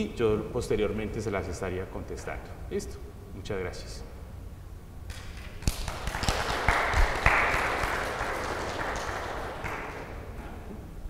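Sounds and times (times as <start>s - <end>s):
audience applauding: 5.1s - 10.3s.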